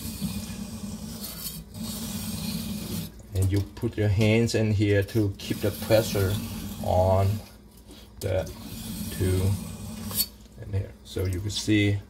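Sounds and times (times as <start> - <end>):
tap water running: 0.0 - 12.0
knife scraping on sharpening stone: 1.1 - 3.0, 10.0 - 10.4.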